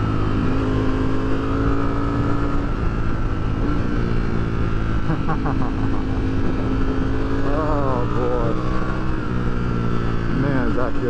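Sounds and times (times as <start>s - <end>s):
motorcycle engine cruising: 0.0s - 11.0s
rider's voice: 7.4s - 8.8s, 10.3s - 11.0s.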